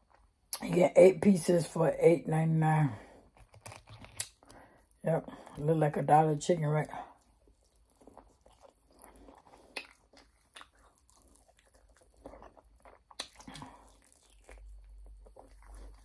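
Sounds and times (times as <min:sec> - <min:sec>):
chewing chicken wing: 0:07.1 - 0:16.0.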